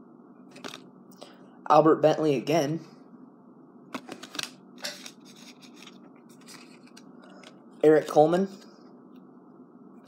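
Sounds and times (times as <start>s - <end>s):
trading cards sliding and flicking: 3.9s - 7.6s.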